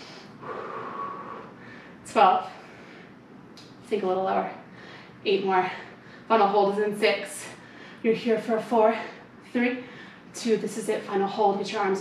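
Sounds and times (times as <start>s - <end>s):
woman breathing hard: 0.0s - 3.2s, 4.7s - 5.2s, 7.6s - 8.0s, 9.1s - 10.3s.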